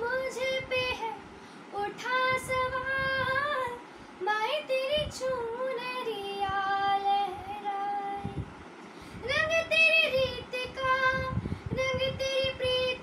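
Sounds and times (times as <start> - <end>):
girl singing unaccompanied: 0.0 - 8.5, 9.2 - 13.0.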